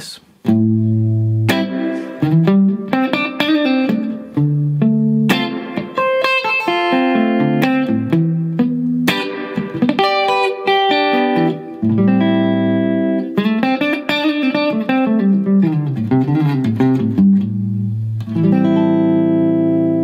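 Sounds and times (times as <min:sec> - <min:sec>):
clean electric guitar playing: 0:00.4 - 0:20.0.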